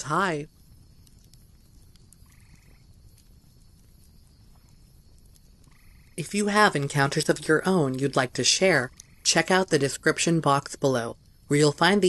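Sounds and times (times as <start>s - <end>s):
faint background ambience: 0.0s - 12.0s.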